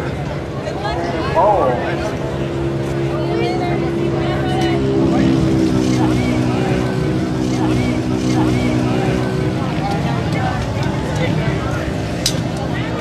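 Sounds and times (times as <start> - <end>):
person talking: 1.4 - 2.1.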